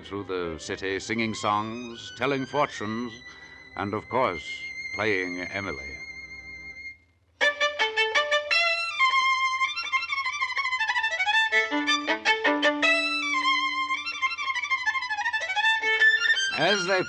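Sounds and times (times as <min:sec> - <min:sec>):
violin playing fast gypsy music: 0:00.4 - 0:17.0.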